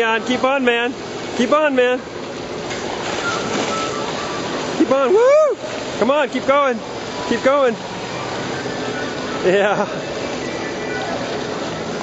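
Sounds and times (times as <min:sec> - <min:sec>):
water splashing from swimmer: 0:00.0 - 0:12.0
man shouting: 0:04.9 - 0:05.6.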